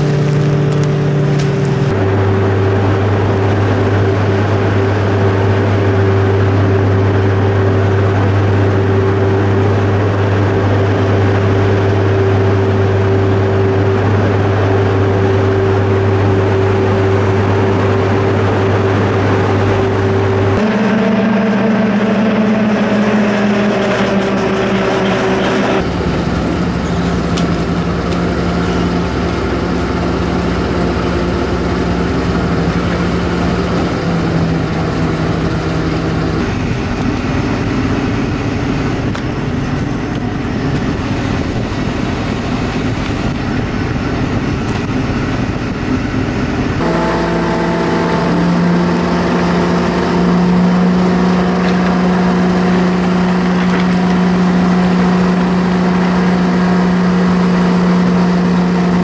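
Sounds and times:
diesel engine humming: 0:00.0 - 0:59.0
water wash: 0:00.0 - 0:59.0.

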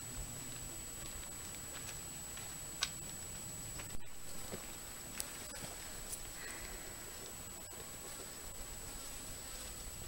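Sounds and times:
faint irregular clicks: 0:01.0 - 0:03.9.

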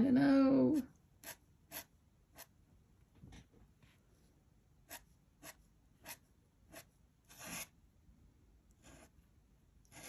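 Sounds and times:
pen nib scratching on paper: 0:01.2 - 0:02.5, 0:04.9 - 0:07.7, 0:08.8 - 0:09.2.

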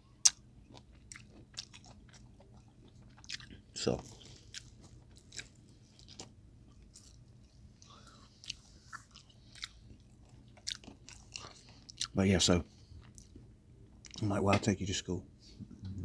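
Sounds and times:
close-up chewing: 0:00.1 - 0:12.2, 0:12.8 - 0:14.2.

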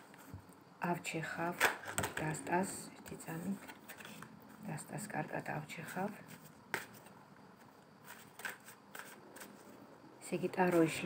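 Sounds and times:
cards being shuffled: 0:06.3 - 0:07.1, 0:08.0 - 0:09.8.

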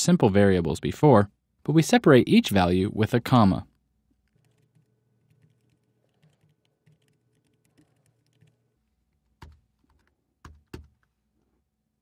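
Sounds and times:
computer keyboard typing: 0:04.1 - 0:11.1.

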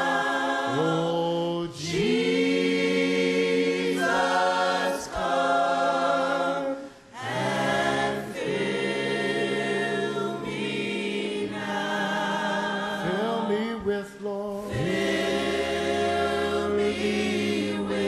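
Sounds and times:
congregation singing: 0:00.0 - 0:18.0.

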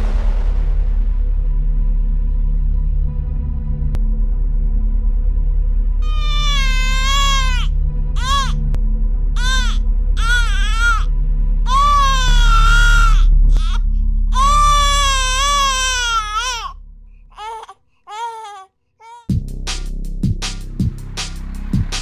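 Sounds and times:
infant crying: 0:06.0 - 0:08.6, 0:09.4 - 0:11.1, 0:11.7 - 0:19.3.

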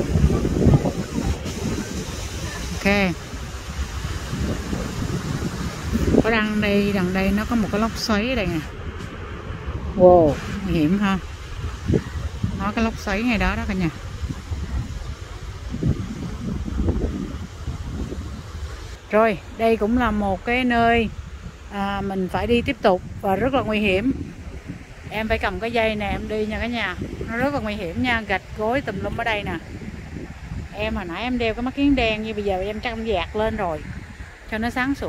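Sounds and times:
surf breaking on rocks: 0:00.0 - 0:22.4
wind buffeting microphone: 0:00.0 - 0:35.0.

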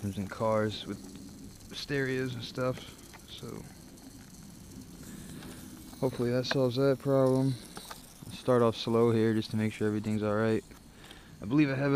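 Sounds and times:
faint steady hiss: 0:00.0 - 0:11.9.

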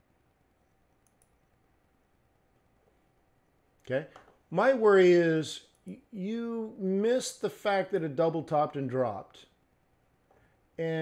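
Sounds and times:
computer mouse clicks: 0:00.9 - 0:01.4.

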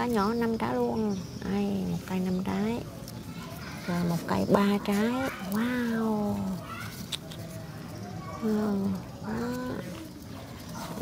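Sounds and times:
quiet outdoor background: 0:00.0 - 0:11.0.

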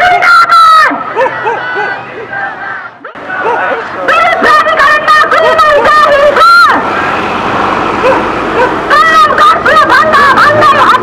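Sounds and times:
faint voices: 0:00.0 - 0:11.0
motor vehicle running: 0:00.9 - 0:11.0.

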